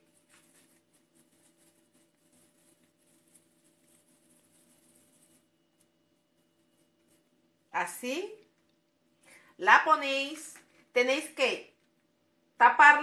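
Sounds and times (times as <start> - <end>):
hands shaping dough: 0.0 - 12.4.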